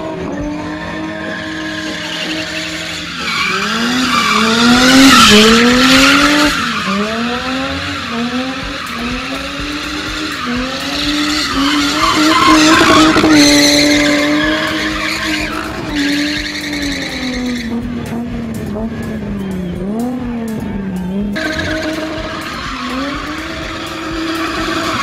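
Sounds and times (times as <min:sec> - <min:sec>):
car engine at high revs: 0:00.0 - 0:25.0
tyres spinning on tarmac: 0:00.2 - 0:20.0, 0:20.8 - 0:25.0.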